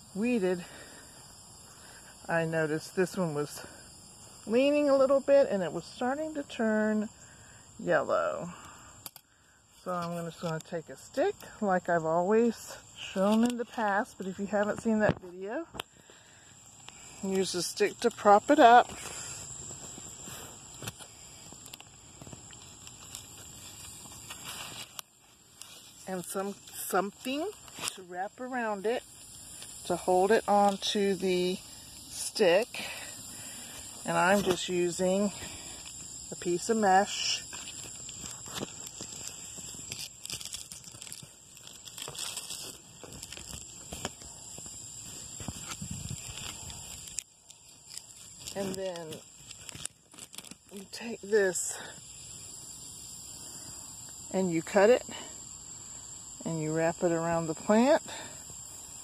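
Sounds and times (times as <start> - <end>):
cicadas droning: 0.0 - 59.0
plant leaves rustling: 16.9 - 51.9.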